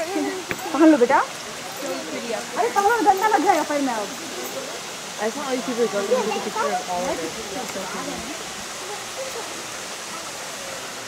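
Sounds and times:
people talking: 0.0 - 11.0
steady background hiss: 0.0 - 11.0.

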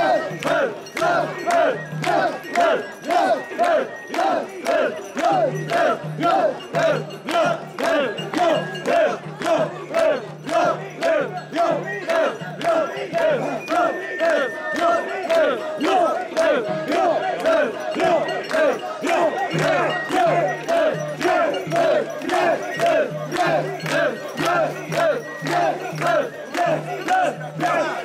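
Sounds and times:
crowd chanting in unison: 0.0 - 28.0.

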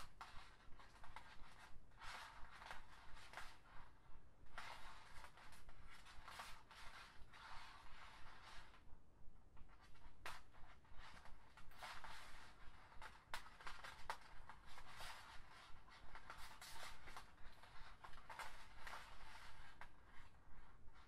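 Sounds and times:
plastic strings rustling and clicking: 9.6 - 21.0.

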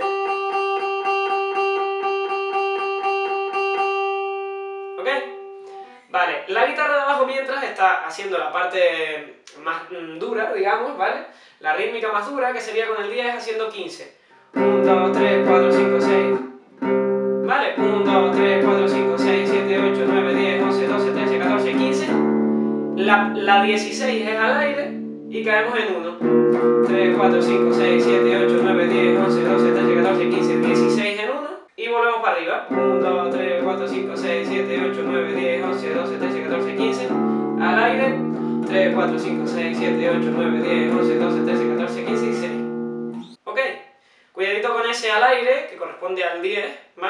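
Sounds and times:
electric guitar picking a note: 0.0 - 6.0, 14.6 - 25.5, 26.2 - 31.0, 32.7 - 43.4.

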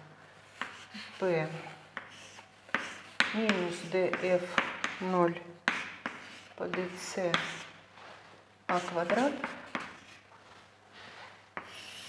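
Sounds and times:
chalk scratching on blackboard: 0.4 - 5.1, 5.7 - 12.0
chalk tapping: 0.4 - 7.8, 8.7 - 10.3, 11.5 - 12.0.

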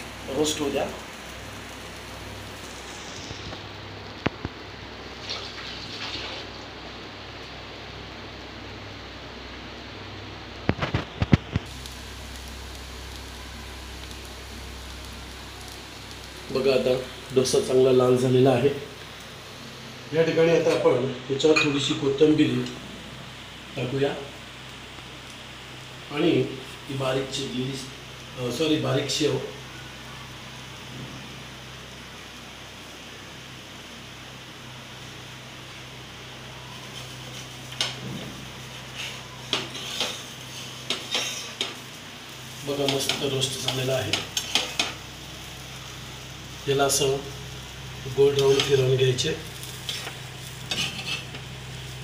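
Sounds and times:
food sizzling on a hot pan: 0.0 - 52.0
steady low hum: 6.5 - 52.0.

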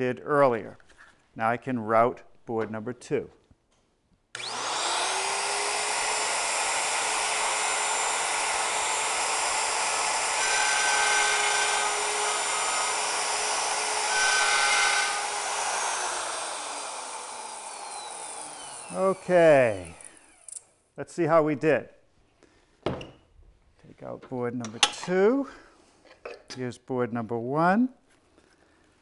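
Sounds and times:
router cutting wood: 4.4 - 20.6
router winding down: 4.4 - 20.6.

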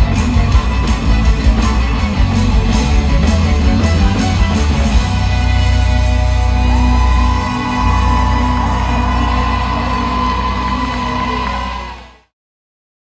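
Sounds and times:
live rock band: 0.0 - 12.1
crowd shouts: 5.6 - 12.3.

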